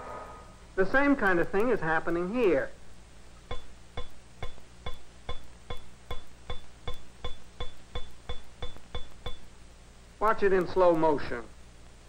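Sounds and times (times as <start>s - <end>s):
ball bearing bouncing on glass: 3.4s - 9.6s.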